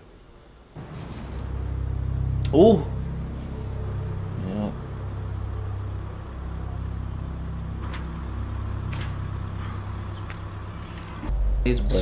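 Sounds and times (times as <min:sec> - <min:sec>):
military vehicle engine rumbling: 0:00.8 - 0:12.0.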